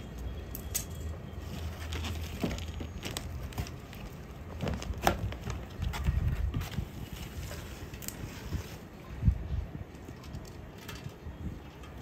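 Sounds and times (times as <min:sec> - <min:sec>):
plastic bag rustling: 0:01.4 - 0:09.0
wind rumble on microphone: 0:05.2 - 0:10.5.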